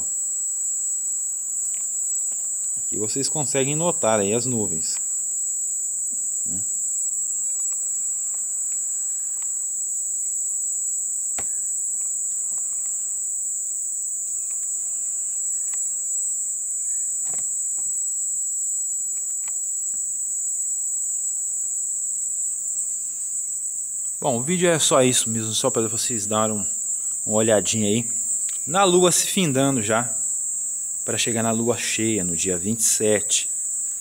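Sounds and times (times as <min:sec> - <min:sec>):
crickets trilling: 0:00.0 - 0:34.0.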